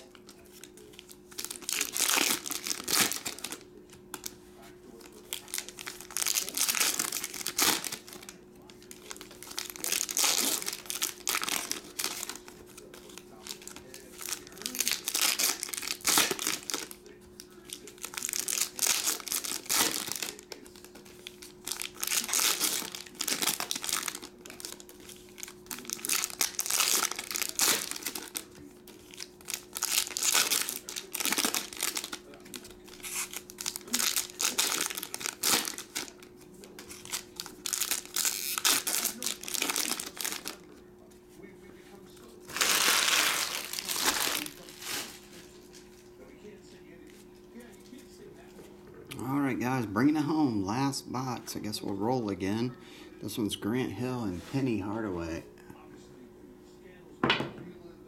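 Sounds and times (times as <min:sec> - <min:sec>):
foil wrappers crinkling and tearing: 0:00.0 - 0:46.5.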